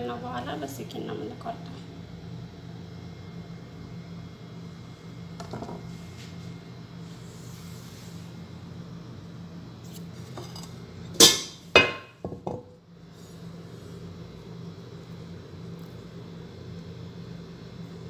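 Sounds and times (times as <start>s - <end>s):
low steady hum: 0.0s - 18.0s
kitchenware clinking: 10.4s - 12.6s.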